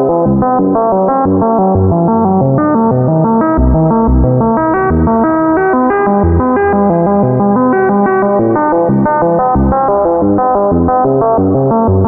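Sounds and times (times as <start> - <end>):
synthesizer arpeggio with reverb: 0.0 - 12.0
deep synth bass notes: 1.4 - 11.0.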